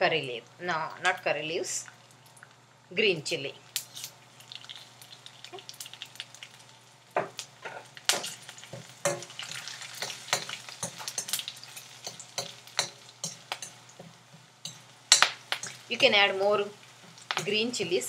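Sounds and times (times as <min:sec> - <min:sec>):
spices sizzling in hot oil: 0:00.2 - 0:18.0.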